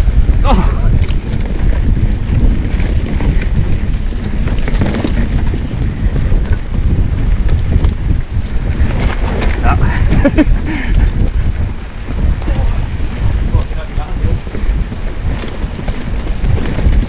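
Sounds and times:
bike rattling over bumps: 0.0 - 17.0
tyres rolling over dirt: 0.0 - 17.0
wind rumble on microphone: 0.0 - 17.0.

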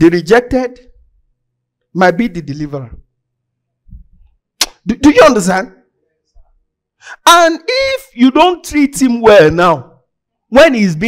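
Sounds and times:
man speaking into microphone: 0.0 - 1.0, 1.9 - 3.0, 4.7 - 5.8, 7.1 - 11.0.

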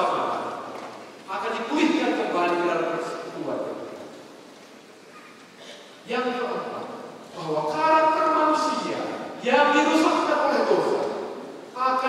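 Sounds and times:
man preaching loudly: 0.0 - 0.6, 1.3 - 3.8, 6.1 - 11.2, 11.8 - 12.0.

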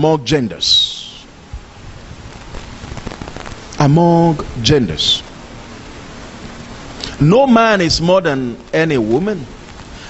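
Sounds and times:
man speaking: 0.0 - 1.2, 3.8 - 5.3, 7.2 - 9.5
faint crackling ticks: 9.6 - 10.0.

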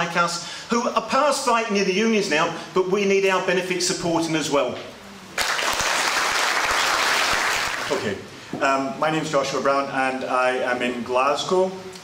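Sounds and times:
audience applauding: 5.4 - 8.0.

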